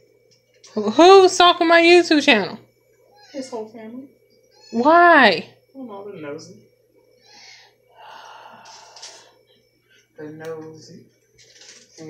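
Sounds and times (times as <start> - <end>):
person breathing out: 7.3 - 9.4.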